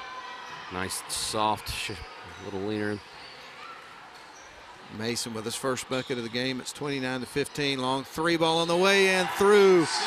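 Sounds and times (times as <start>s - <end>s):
low crowd chatter: 0.0s - 10.0s.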